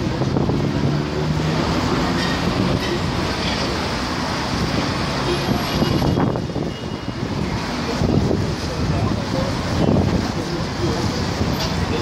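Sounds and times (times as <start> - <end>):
city traffic noise: 0.0 - 12.0.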